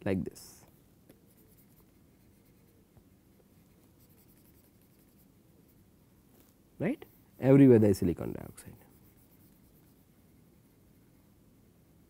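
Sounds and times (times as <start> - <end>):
stylus scratching on tablet screen: 1.3 - 5.8, 8.3 - 11.3.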